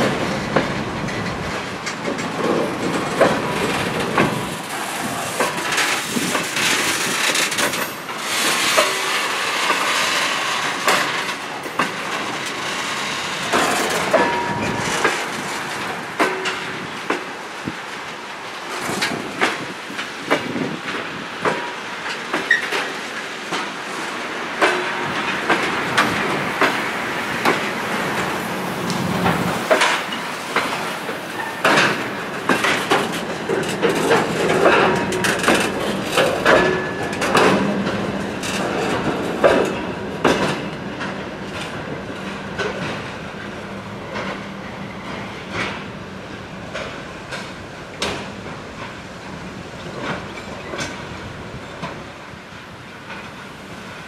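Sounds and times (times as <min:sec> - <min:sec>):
wagon wheels clanking over rail joints: 0:00.0 - 0:44.4.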